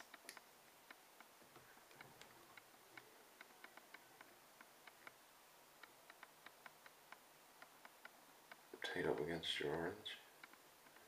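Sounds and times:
faint small clicks and ticks: 0.0s - 5.2s, 5.8s - 11.0s.

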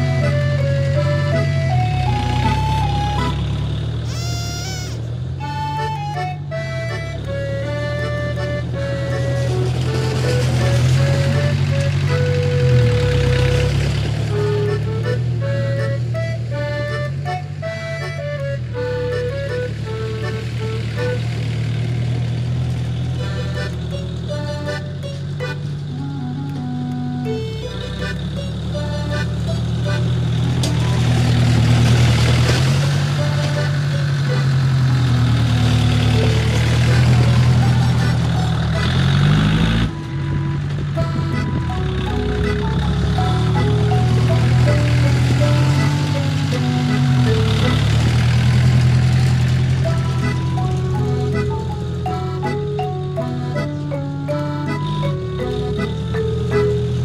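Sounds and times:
light melodic background music: 0.0s - 57.0s
tractor engine running under load: 0.0s - 57.0s.

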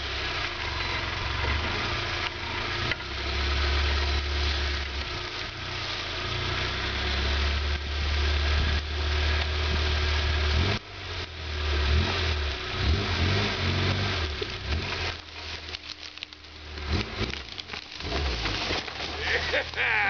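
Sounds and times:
engine running at low revs: 0.0s - 20.0s.

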